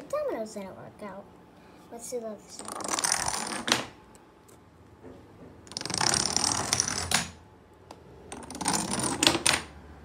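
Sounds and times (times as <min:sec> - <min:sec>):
wooden blocks clattering: 0:08.3 - 0:09.7.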